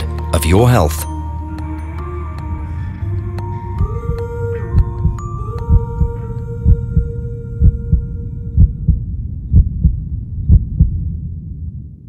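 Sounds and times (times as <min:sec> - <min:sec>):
sustained ambient music: 0:00.0 - 0:11.9
heartbeat thumping: 0:03.7 - 0:11.2.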